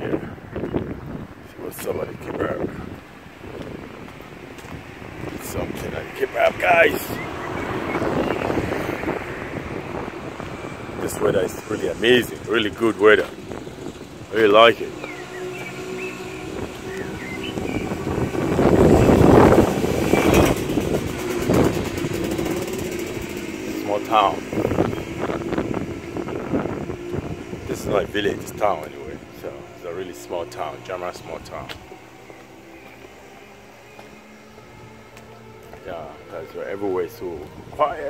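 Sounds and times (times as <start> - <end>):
faint low street hum: 0.0 - 38.0
motorbike passing: 2.2 - 38.0.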